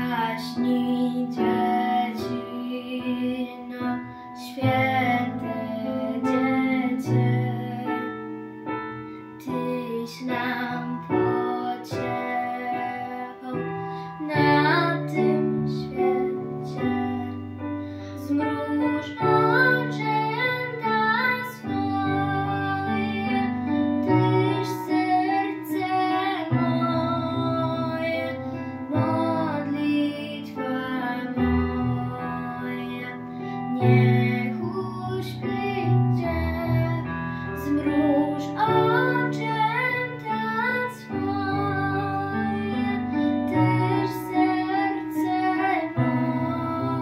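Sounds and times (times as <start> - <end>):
girl singing a lullaby: 0.0 - 47.0.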